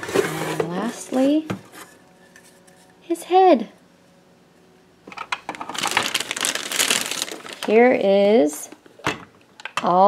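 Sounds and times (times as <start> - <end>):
plastic bag crinkling: 5.5 - 8.1.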